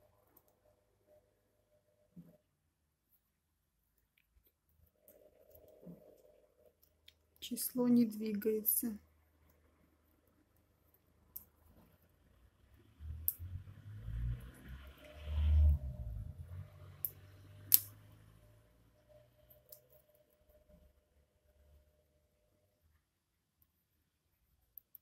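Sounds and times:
sharp clicks: 17.0s - 18.0s.

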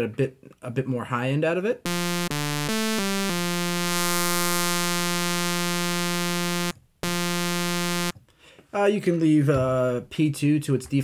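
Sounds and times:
distorted sawtooth synth lead: 1.9s - 8.1s.

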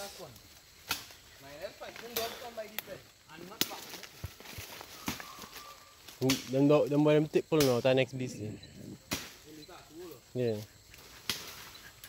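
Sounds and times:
twigs snapping underfoot: 0.4s - 6.6s, 11.0s - 11.6s
faint distant calling: 4.5s - 6.4s.

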